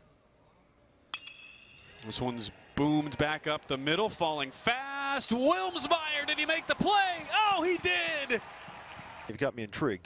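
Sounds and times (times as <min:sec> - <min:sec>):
faint stadium background: 0:00.0 - 0:10.0
metal bat hitting ball: 0:01.1 - 0:01.8.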